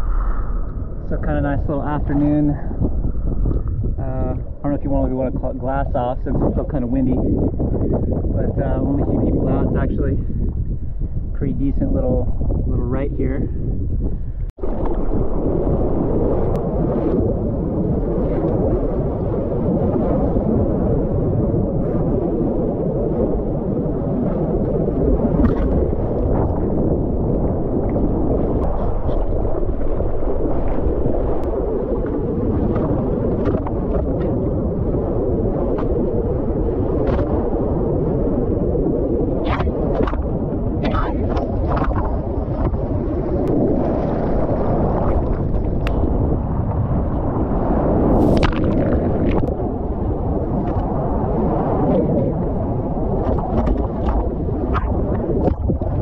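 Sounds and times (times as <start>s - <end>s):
wind on microphone: 0.0s - 56.0s
water splashing against surfboard: 14.6s - 20.7s, 24.2s - 49.7s, 50.3s - 56.0s.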